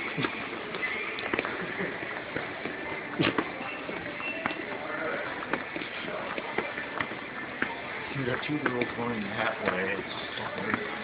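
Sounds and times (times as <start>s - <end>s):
shop background din: 0.0s - 11.0s.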